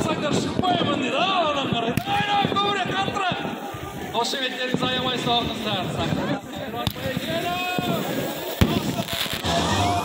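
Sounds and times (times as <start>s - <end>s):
fireworks bangs: 0.0s - 10.0s
music: 9.3s - 10.0s.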